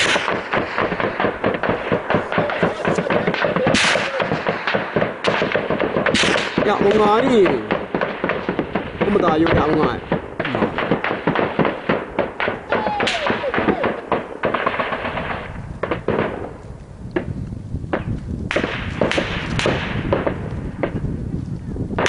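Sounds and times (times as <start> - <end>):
gunfire shots and bursts: 0.0 - 16.6, 17.9 - 21.0.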